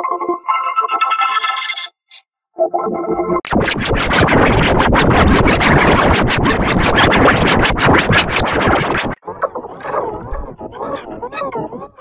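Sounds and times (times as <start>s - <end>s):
distorted warbling processed voice: 3.5s - 9.2s.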